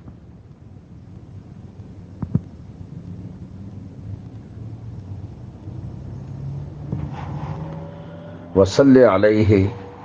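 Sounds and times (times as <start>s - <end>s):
faint hum: 0.0s - 10.0s
low background rumble: 0.0s - 10.0s.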